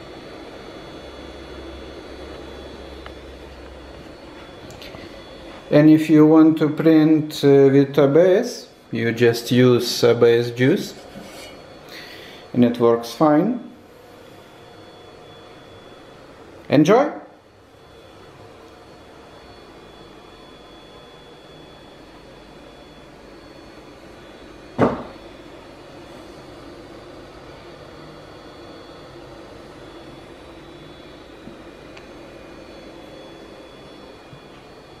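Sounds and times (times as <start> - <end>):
cooling fan humming: 0.0 - 35.0.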